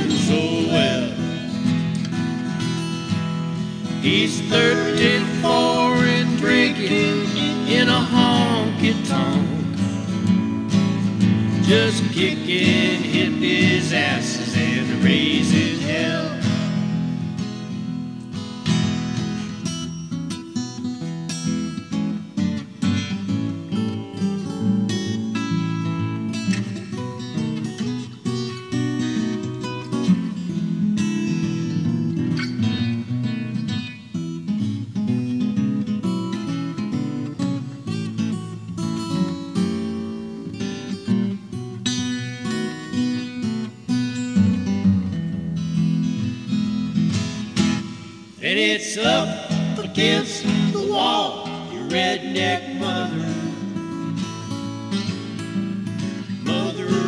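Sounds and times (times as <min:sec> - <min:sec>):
acoustic guitar picked and strummed: 0:00.0 - 0:57.0.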